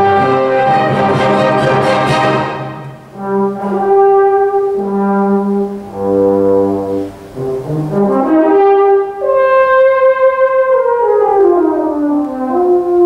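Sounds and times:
solo euphonium playing: 0.0 - 13.0.

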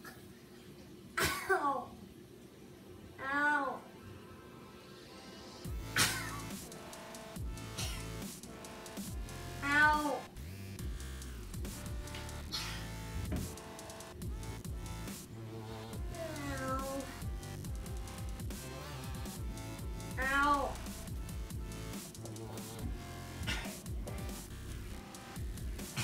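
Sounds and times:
dubstep electronic music: 4.8 - 26.0.

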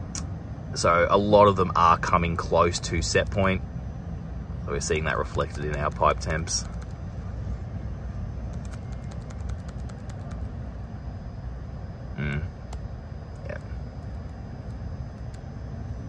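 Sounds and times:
heat pump low rumble: 0.0 - 16.0.

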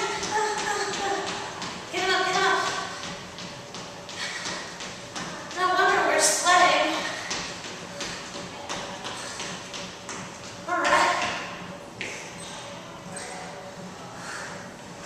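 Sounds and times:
woman's voice: 0.0 - 2.9, 5.5 - 7.2, 10.7 - 11.3.

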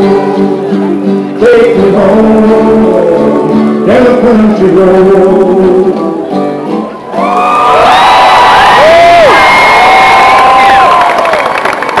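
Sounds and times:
crowd cheering and applause: 7.0 - 12.0
long whoops: 7.1 - 11.6.

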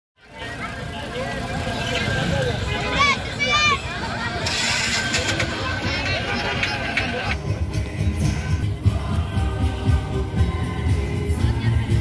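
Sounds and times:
crowd chatter: 0.2 - 12.0
steady low rumble: 0.6 - 12.0.

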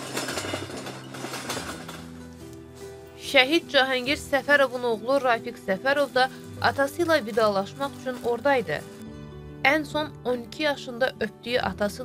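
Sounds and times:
stretcher frame and wheels rattling: 0.0 - 4.8.

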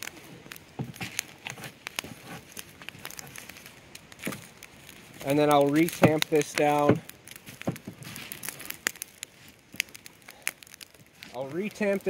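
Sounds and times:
stick stirring burning wood: 0.0 - 12.0
wood fire crackling: 0.0 - 12.0.

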